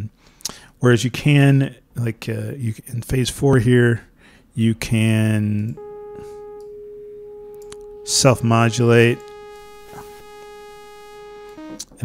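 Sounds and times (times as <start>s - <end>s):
synthesizer held sine tone: 5.8s - 12.0s.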